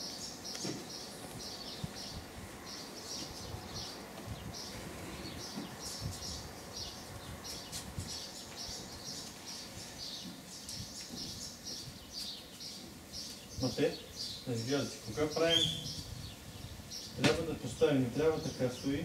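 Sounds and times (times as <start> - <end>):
small birds chirping: 0.0 - 19.0.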